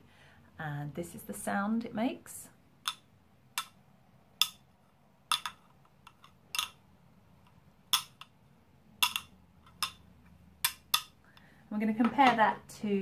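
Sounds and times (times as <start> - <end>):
bangles clunking together: 5.3 - 6.9, 9.0 - 10.0.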